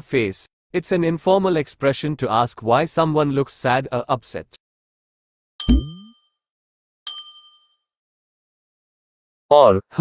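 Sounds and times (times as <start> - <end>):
bright electronic ding: 5.6 - 6.1.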